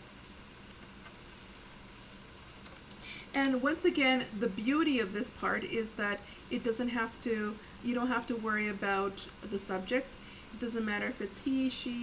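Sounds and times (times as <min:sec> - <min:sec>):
low steady background noise: 0:00.0 - 0:12.0.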